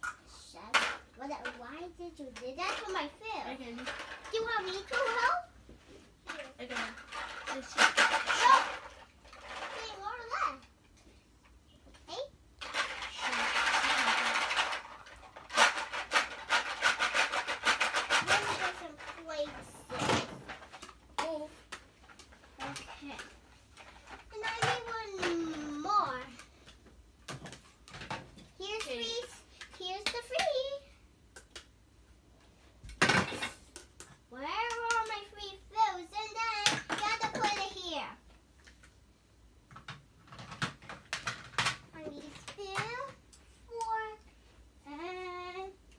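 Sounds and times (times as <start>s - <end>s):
child's voice: 0.3s - 5.5s, 6.2s - 8.8s, 9.7s - 10.7s, 12.0s - 12.3s, 18.2s - 20.3s, 21.2s - 21.6s, 24.3s - 26.4s, 28.6s - 30.9s, 34.3s - 38.2s, 41.9s - 44.2s, 44.8s - 45.8s
plastic toy pieces clattering: 2.4s - 5.4s, 6.3s - 10.0s, 12.6s - 26.5s, 39.7s - 43.2s.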